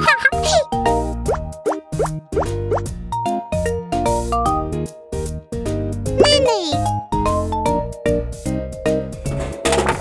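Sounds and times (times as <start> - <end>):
bouncy cartoon music: 0.0 - 10.0.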